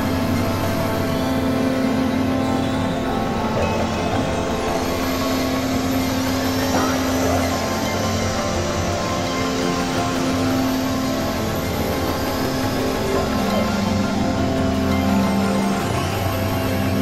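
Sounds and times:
noisy synthesizer texture: 0.0 - 17.0.

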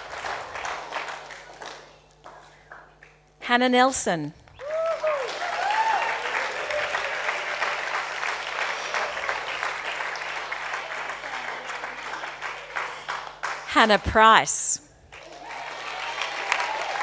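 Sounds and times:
audience applauding: 0.0 - 2.9, 4.6 - 13.7, 15.1 - 17.0
people cheering: 4.6 - 13.0, 15.2 - 17.0.

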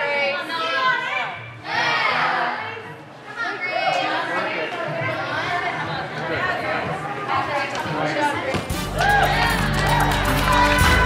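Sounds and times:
girls calling out and chattering: 0.0 - 7.7.

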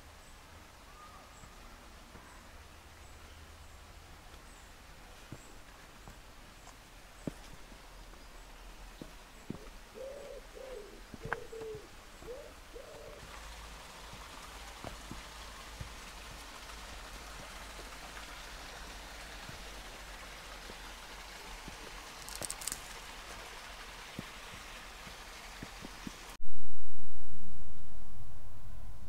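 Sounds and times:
faint outdoor background hiss: 0.0 - 29.0
pigeon cooing: 9.6 - 13.3.

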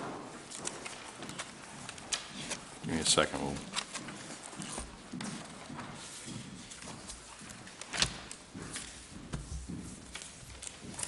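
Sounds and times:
papers rustling: 0.0 - 11.0.

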